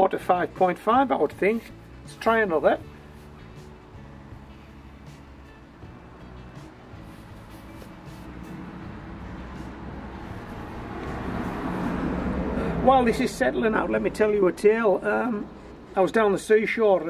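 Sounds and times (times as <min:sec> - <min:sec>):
road traffic rumbling: 0:00.8 - 0:17.0
vehicle approaching: 0:01.7 - 0:17.0.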